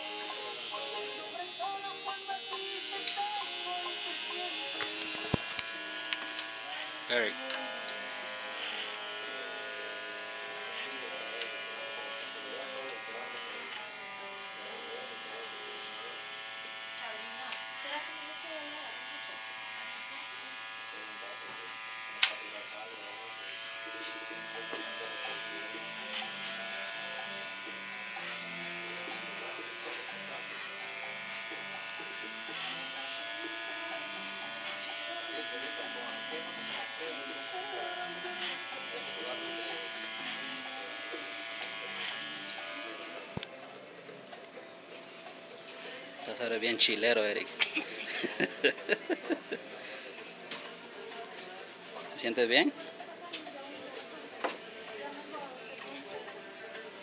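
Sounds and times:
electric hair clippers buzzing: 0.0 - 57.0.

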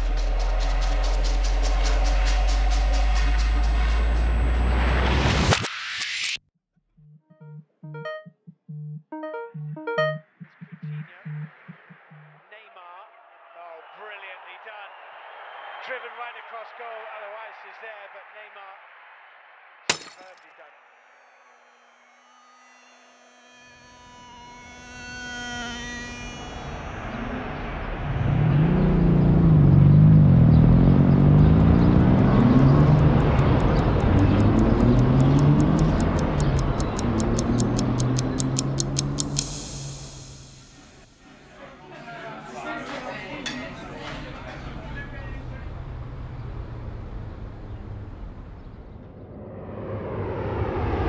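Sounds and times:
ringing tones: 7.0 - 11.5
fast regular ticking: 32.4 - 41.2
sharp hit: 39.4 - 41.4.

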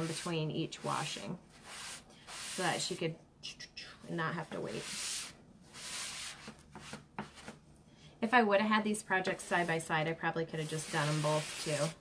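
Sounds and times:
paper towel wiping strokes: 0.0 - 3.0, 4.5 - 7.5, 10.6 - 12.0.

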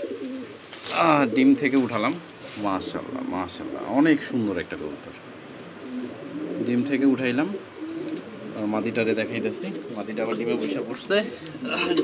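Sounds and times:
pigeon cooing: 0.0 - 4.4, 5.2 - 12.0
man speaking: 0.9 - 5.2, 8.6 - 12.0.

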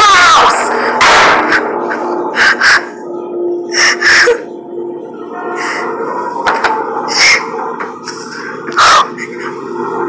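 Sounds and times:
woman sobbing: 3.7 - 4.6.

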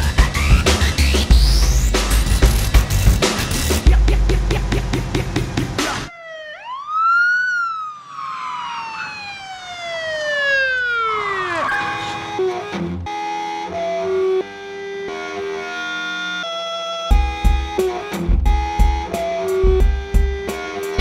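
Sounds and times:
police siren winding down: 5.8 - 21.0
music with held notes: 12.3 - 21.0.

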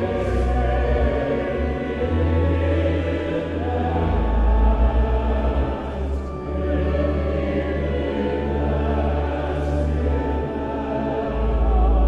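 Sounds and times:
congregation singing a hymn: 0.0 - 12.0
pipe organ chords: 0.0 - 12.0.

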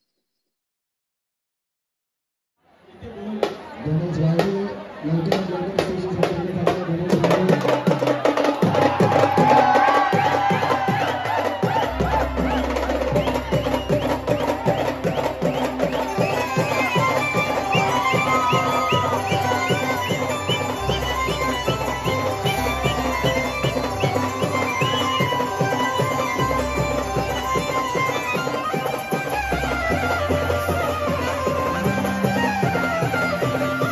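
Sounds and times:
drums and cymbals beat: 5.3 - 33.9
melody line: 12.0 - 33.9.

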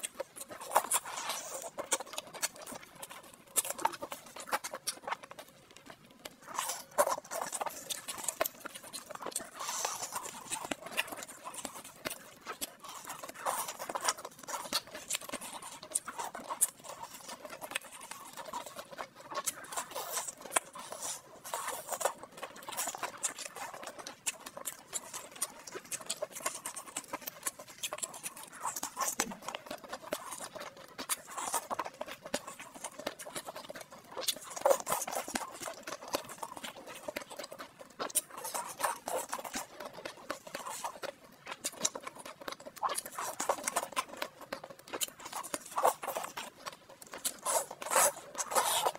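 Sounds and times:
slurping: 0.0 - 48.9
wet chewing and smacking: 0.0 - 48.9.

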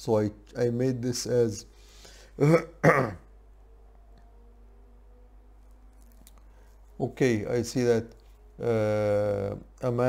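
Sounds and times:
man coughing: 2.4 - 3.3.

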